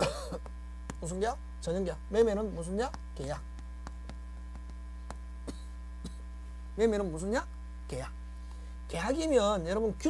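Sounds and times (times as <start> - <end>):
electrical mains hum: 0.0 - 10.0
chalk tapping and scraping on chalkboard: 2.8 - 5.2.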